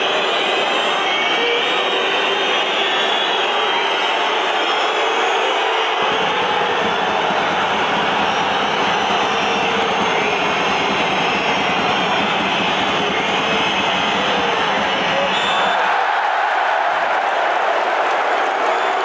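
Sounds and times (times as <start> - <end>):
crowd roaring: 0.0 - 19.0.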